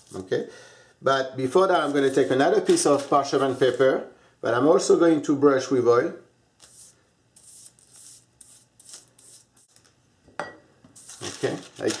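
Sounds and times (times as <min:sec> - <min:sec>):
parchment paper rustling: 0:01.8 - 0:03.8, 0:11.0 - 0:12.0.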